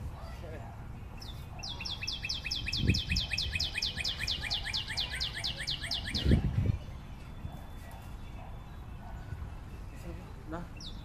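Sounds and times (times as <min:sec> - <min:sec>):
bird singing fast trill: 0:01.2 - 0:07.8, 0:10.7 - 0:11.0.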